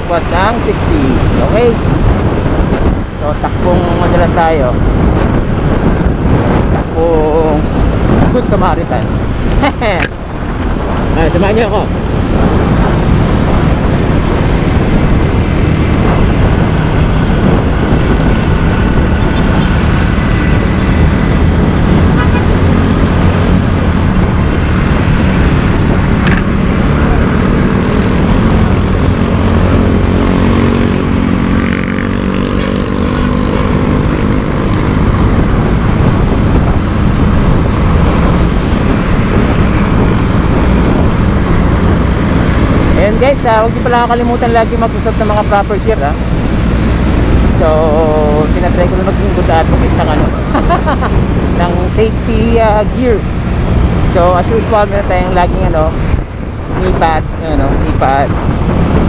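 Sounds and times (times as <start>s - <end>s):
traffic: 0.0s - 59.0s
wind rush on microphone: 0.0s - 59.0s
scooter engine hum: 9.2s - 43.8s
engine note rising and falling: 11.0s - 59.0s.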